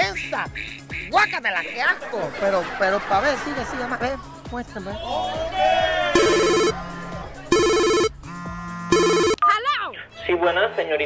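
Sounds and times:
mobile phone ringtone trilling: 0:06.2 - 0:09.6.

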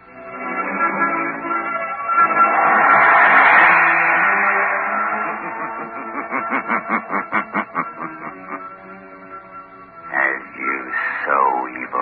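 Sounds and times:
radio hiss: 0:10.2 - 0:12.0.

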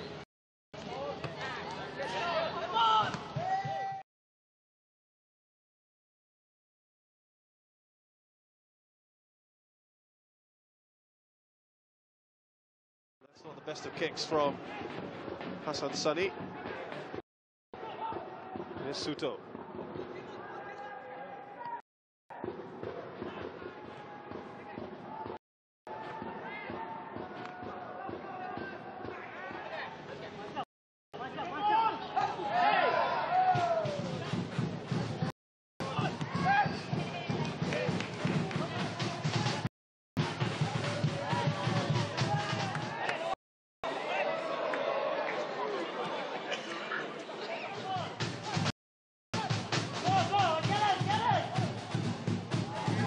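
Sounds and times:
players and spectators shouting: 0:01.3 - 0:04.0, 0:17.8 - 0:19.1, 0:20.3 - 0:30.0, 0:31.2 - 0:34.4, 0:35.8 - 0:48.7, 0:52.5 - 0:53.0.

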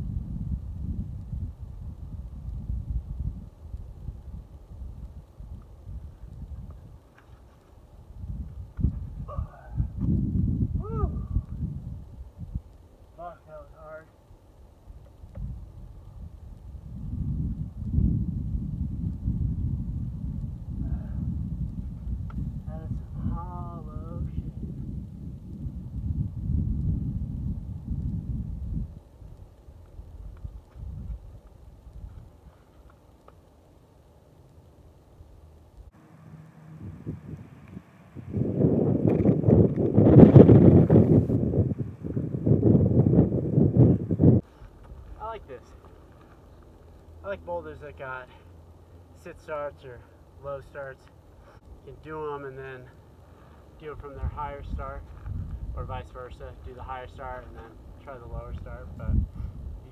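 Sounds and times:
wind buffeting microphone: 0:00.0 - 0:32.8, 0:35.8 - 0:46.6, 0:53.0 - 0:59.9.

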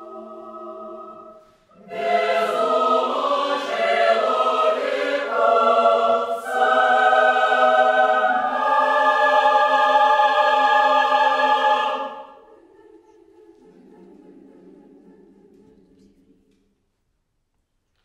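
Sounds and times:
choir singing loudly: 0:00.0 - 0:16.0.

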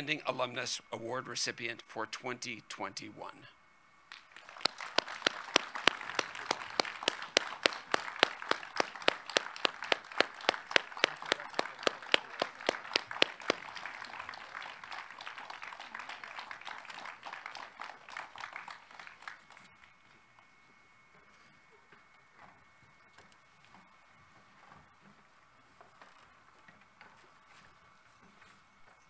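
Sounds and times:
person clapping steady beat: 0:04.1 - 0:19.6
audience applauding: 0:04.1 - 0:19.8.

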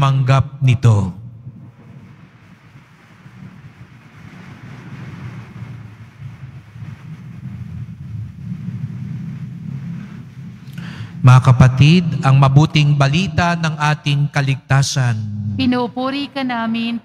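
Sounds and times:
church room ambience rumble: 0:00.0 - 0:17.0.

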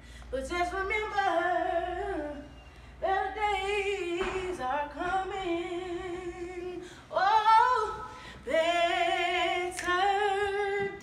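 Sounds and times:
woman singing a cappella: 0:00.2 - 0:11.0.

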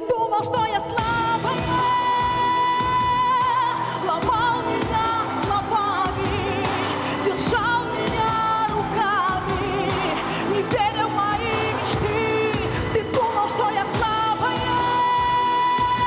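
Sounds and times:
pop accompaniment: 0:00.0 - 0:16.0
woman singing pop song: 0:00.0 - 0:16.0.

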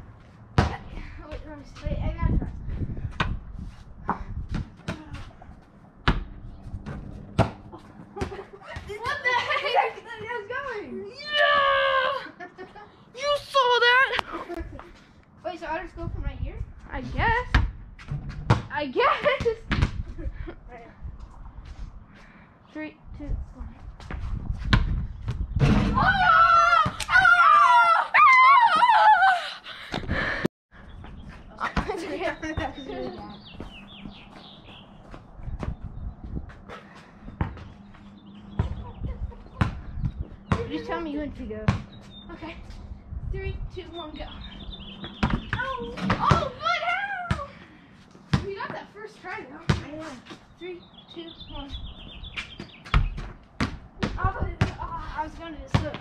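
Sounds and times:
basketball bouncing thuds: 0:00.6 - 0:01.5, 0:06.0 - 0:09.4, 0:17.4 - 0:20.1, 0:39.5 - 0:41.0, 0:41.6 - 0:42.1, 0:45.0 - 0:46.6, 0:48.3 - 0:48.8, 0:49.6 - 0:50.0, 0:52.6 - 0:55.0, 0:55.6 - 0:56.0
children shouting excitedly: 0:11.1 - 0:12.3, 0:26.0 - 0:29.5, 0:45.6 - 0:47.5.

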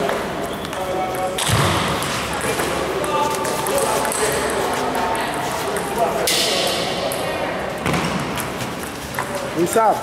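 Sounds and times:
murmur of voices: 0:00.0 - 0:10.0.

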